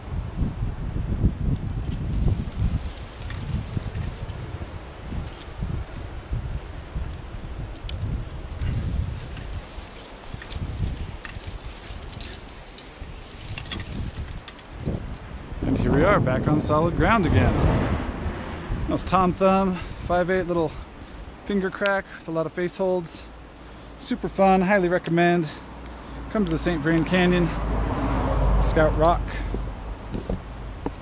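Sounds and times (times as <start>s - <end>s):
wind buffeting microphone: 0.0s - 21.6s
climbing hardware clinking: 2.9s - 5.6s, 7.1s - 15.3s.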